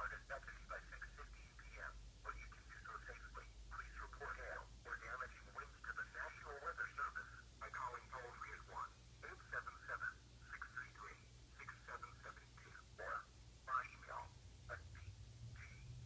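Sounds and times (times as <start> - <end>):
tinny voice from small speaker: 0.0 - 16.0.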